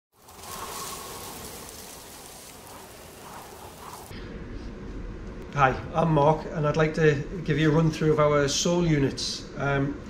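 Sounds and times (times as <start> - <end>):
steady rain-like hiss: 0.2 - 4.1.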